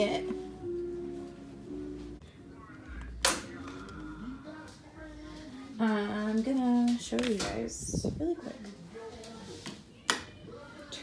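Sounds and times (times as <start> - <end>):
faint background voices: 2.2 - 11.0.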